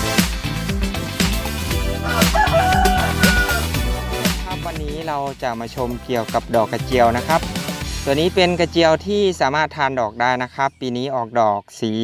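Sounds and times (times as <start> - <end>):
music with steady beat: 0.0 - 8.7
rooster crowing: 2.0 - 3.8.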